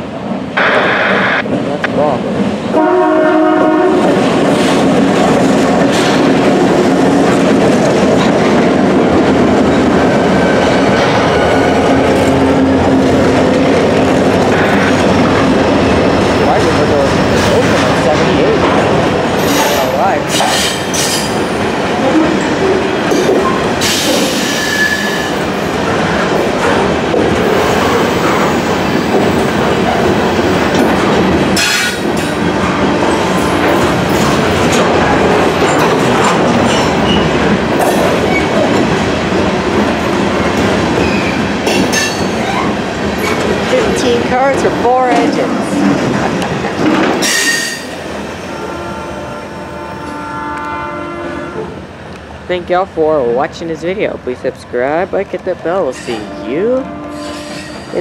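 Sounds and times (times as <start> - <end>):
train wheels rumbling on rails: 0.0 - 58.0
high wheel squeals: 23.8 - 25.4.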